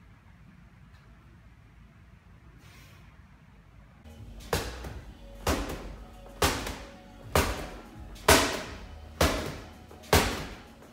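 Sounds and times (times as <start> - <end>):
background music: 4.1 - 10.9
medicine ball thudding on wall: 4.4 - 10.7.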